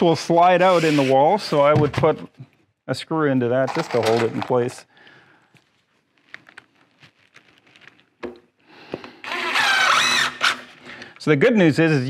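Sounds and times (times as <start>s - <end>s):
cordless drill driving screw into wood: 9.2s - 10.8s.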